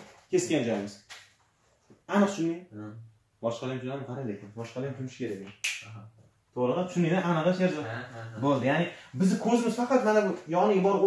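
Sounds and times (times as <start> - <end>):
man speaking: 2.1 - 11.0.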